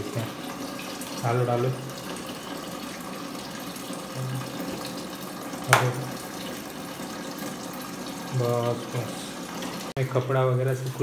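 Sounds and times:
tap water running into machine: 0:00.0 - 0:11.0.

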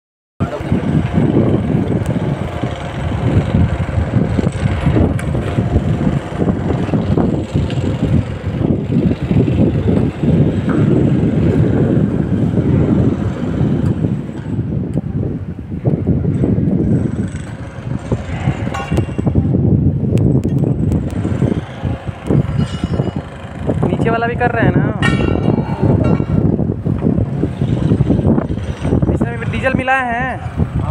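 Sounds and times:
low outdoor rumble: 0:00.4 - 0:30.9.

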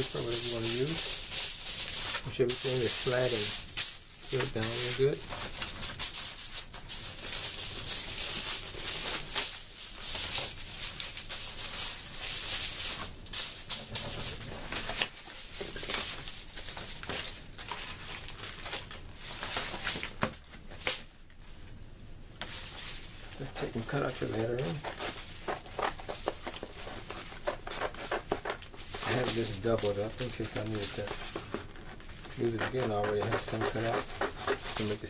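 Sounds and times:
paper rustling on cardboard: 0:00.0 - 0:21.0, 0:22.4 - 0:35.0.

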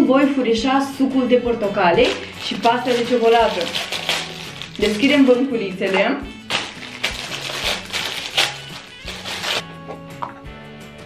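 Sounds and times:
background music: 0:00.0 - 0:11.0
plastic wrapping crinkling: 0:02.0 - 0:05.2, 0:06.4 - 0:09.6.

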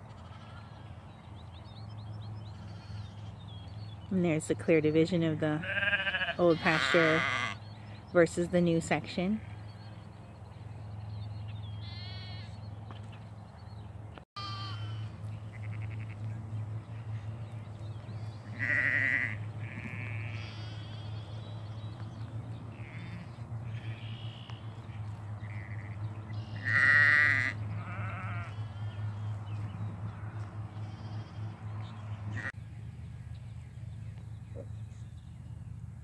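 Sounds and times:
sheep and lambs bleating: 0:00.0 - 0:00.8, 0:02.5 - 0:03.4, 0:05.4 - 0:07.6, 0:09.2 - 0:09.8, 0:11.8 - 0:12.6, 0:14.4 - 0:17.3, 0:18.3 - 0:21.6, 0:22.7 - 0:29.4, 0:30.1 - 0:31.6, 0:32.3 - 0:32.6.

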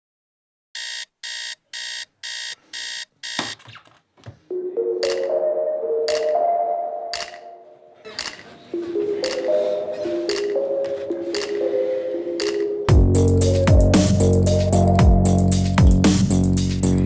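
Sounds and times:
alarm clock beeping: 0:00.8 - 0:03.6, 0:04.5 - 0:05.4, 0:07.0 - 0:07.6, 0:08.2 - 0:13.1
soft background music: 0:04.5 - 0:08.0, 0:08.7 - 0:16.0
switch clicks: 0:07.1 - 0:07.5.

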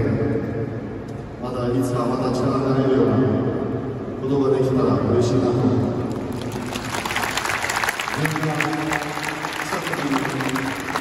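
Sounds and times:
crowd applauding: 0:06.1 - 0:11.0.

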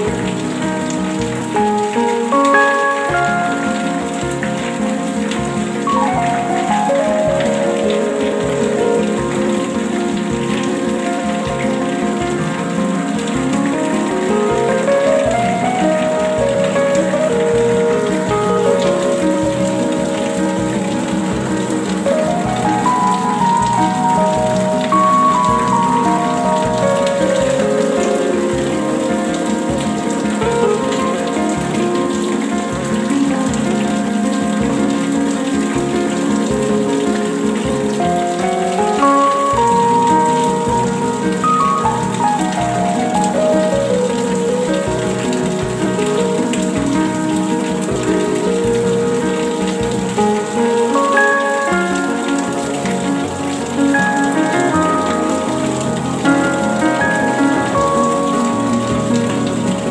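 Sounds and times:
slow music: 0:00.0 - 0:59.9
steady rain falling: 0:00.0 - 0:59.9.

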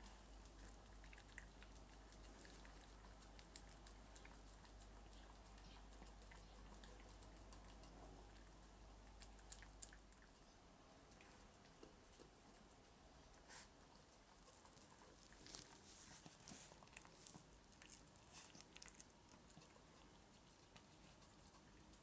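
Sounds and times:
dog licking and chewing: 0:00.0 - 0:10.4, 0:11.1 - 0:22.0.

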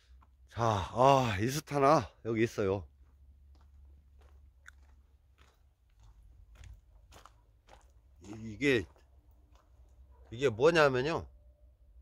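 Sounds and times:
footsteps on gravel: 0:02.8 - 0:10.5.

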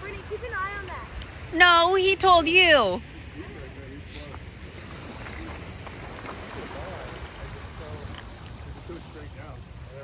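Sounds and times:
waves washing against rocks: 0:00.0 - 0:10.0
wind on microphone: 0:00.0 - 0:10.0.

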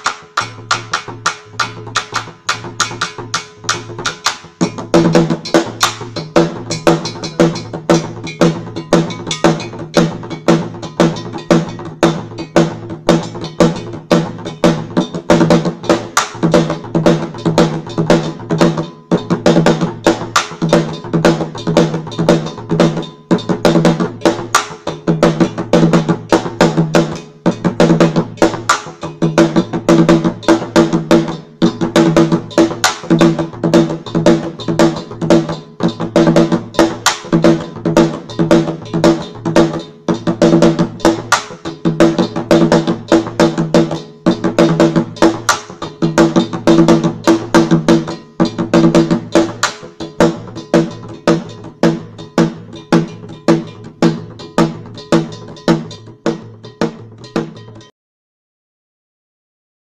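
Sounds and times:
repeating bell pattern: 0:00.0 - 0:25.7, 0:26.6 - 0:57.9
deep drum: 0:00.0 - 0:57.7
hand drums: 0:00.0 - 0:57.9.

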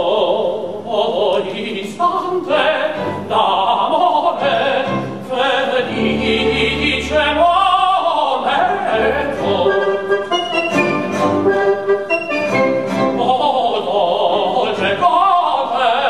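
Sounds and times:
man singing operatically: 0:00.0 - 0:10.8, 0:13.0 - 0:16.0
chamber ensemble playing: 0:05.8 - 0:07.9, 0:08.5 - 0:13.6.

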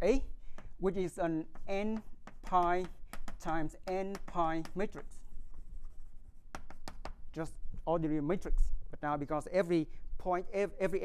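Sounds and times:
chalk tapping: 0:00.4 - 0:07.4
chalk scraping on blackboard: 0:00.6 - 0:07.2.

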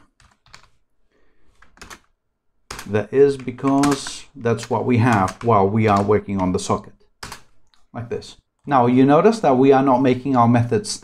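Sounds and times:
quiet keyboard keystrokes: 0:00.0 - 0:00.8, 0:01.6 - 0:02.1, 0:02.7 - 0:07.9.

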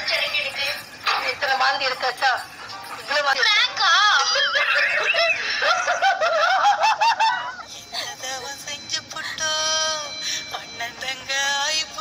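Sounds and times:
woman laughing hard: 0:04.3 - 0:07.7.

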